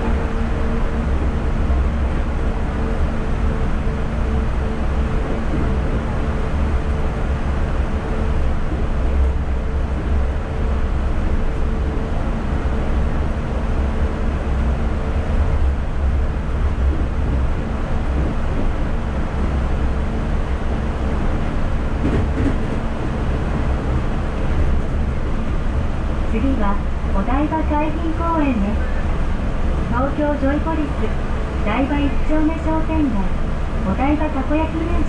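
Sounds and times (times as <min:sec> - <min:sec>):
train tyres rumbling: 0:00.0 - 0:35.0.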